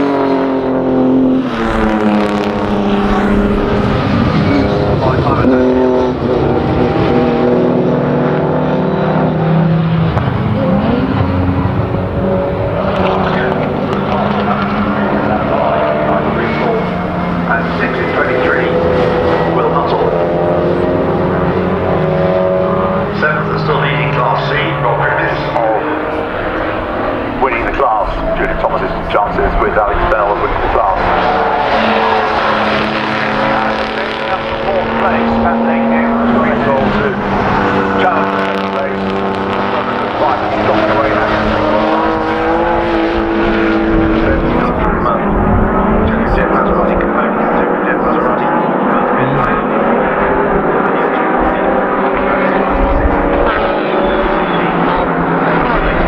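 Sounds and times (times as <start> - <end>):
racing cars passing by: 0.0 - 56.0.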